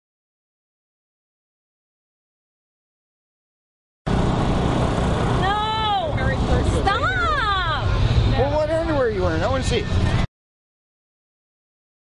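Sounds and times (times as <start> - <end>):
steady low rumble: 4.1 - 10.3.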